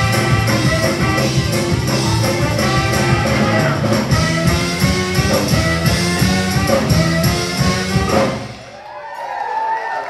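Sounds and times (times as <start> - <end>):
soul band playing: 0.0 - 8.8.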